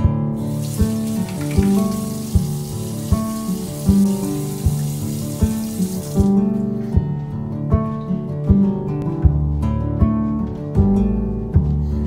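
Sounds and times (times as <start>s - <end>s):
strummed acoustic guitar music: 0.0s - 12.0s
tap water running into sink: 0.4s - 6.4s.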